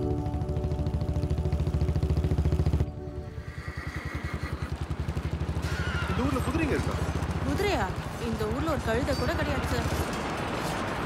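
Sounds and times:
background music: 0:00.0 - 0:04.2
motorcycle engine running: 0:00.0 - 0:11.0.

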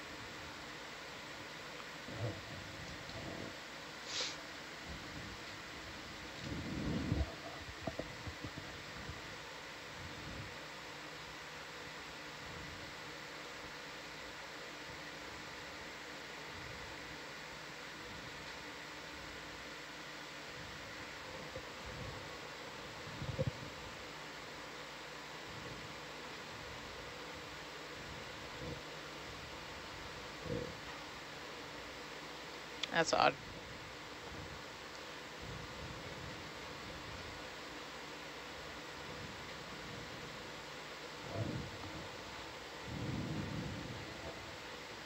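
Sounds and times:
equipment and ventilation hum: 0:00.0 - 0:45.0.

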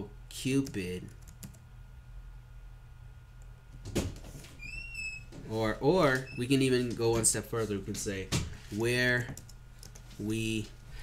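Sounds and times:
low steady hum: 0:00.0 - 0:11.0
computer keyboard keystrokes: 0:00.6 - 0:01.6, 0:09.3 - 0:10.0.

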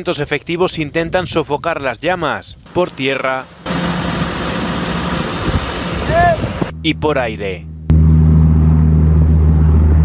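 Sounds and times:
wind buffeting microphone: 0:00.0 - 0:06.8
diesel engine running: 0:02.7 - 0:10.0.

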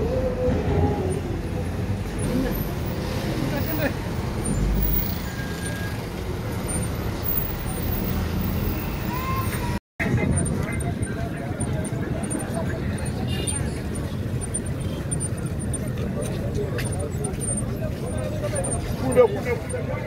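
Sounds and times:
voices of many people: 0:00.0 - 0:06.0, 0:06.7 - 0:20.0
car engine and road noise: 0:00.0 - 0:20.0.

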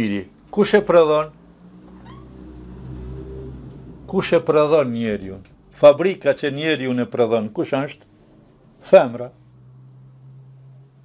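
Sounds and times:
brief rising squeak: 0:01.9 - 0:02.7.

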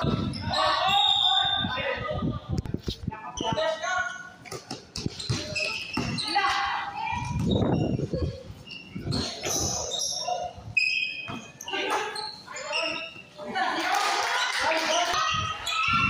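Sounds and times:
sneakers squeaking: 0:00.0 - 0:01.8, 0:03.3 - 0:13.4, 0:14.4 - 0:16.0.

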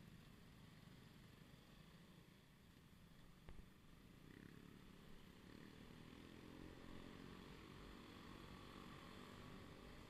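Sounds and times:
motorcycle engines in traffic: 0:00.0 - 0:10.0.

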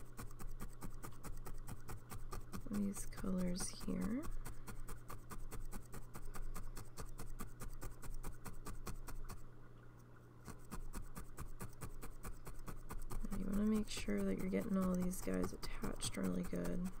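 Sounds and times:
felting needle stabbing wool: 0:00.0 - 0:09.4, 0:10.4 - 0:17.0.

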